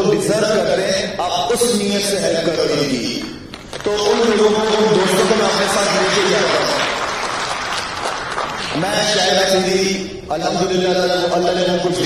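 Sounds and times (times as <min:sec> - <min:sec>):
man's amplified speech: 0:00.0 - 0:07.2, 0:08.6 - 0:12.0
audience applauding: 0:03.6 - 0:08.9.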